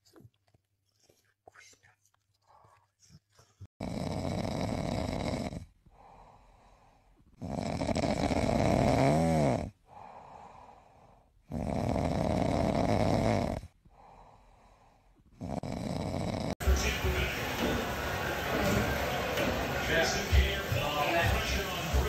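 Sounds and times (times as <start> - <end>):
loud snoring: 3.8 - 5.7, 7.4 - 10.4, 11.4 - 14.2, 15.3 - 16.6
quiet breathing: 5.6 - 7.4, 9.6 - 12.0, 13.6 - 15.4.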